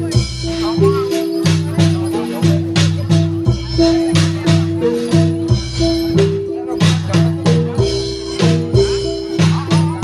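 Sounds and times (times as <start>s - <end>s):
drums beating: 0.0s - 10.0s
jingling percussion: 0.0s - 10.0s.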